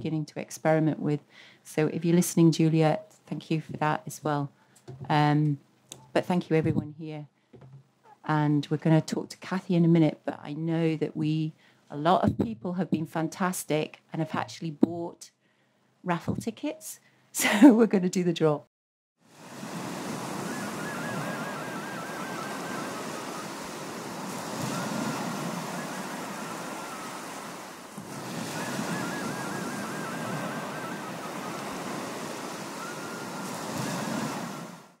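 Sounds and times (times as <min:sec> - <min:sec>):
sea surf rushing: 0:19.3 - 0:35.0
faint high warbling: 0:28.5 - 0:31.8.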